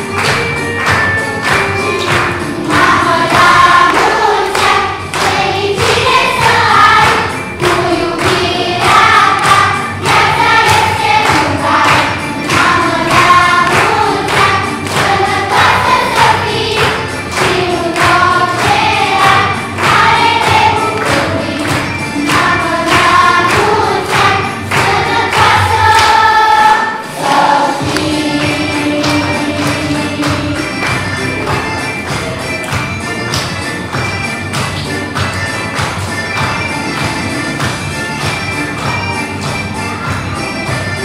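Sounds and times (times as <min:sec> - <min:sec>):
children's choir singing: 0:00.0 - 0:41.0
rhythmic accompaniment: 0:00.0 - 0:41.0.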